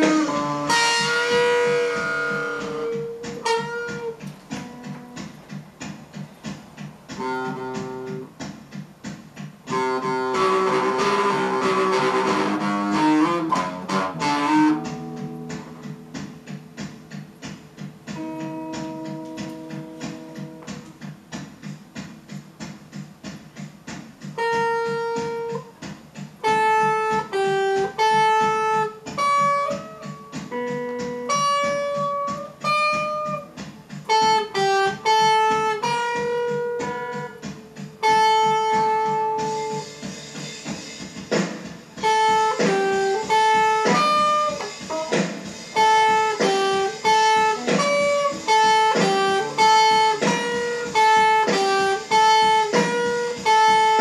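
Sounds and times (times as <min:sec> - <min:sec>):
electric guitar melody: 0:00.0 - 0:54.0.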